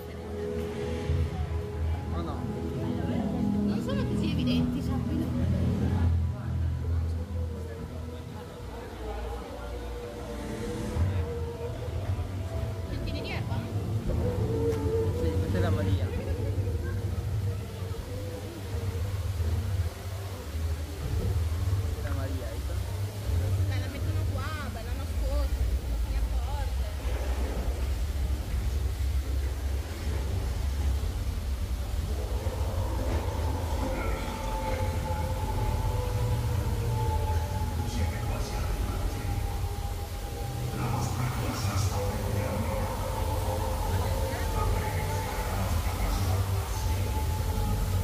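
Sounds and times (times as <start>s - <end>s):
faint voices: 0.0s - 48.0s
steady deep rumble: 15.2s - 48.0s.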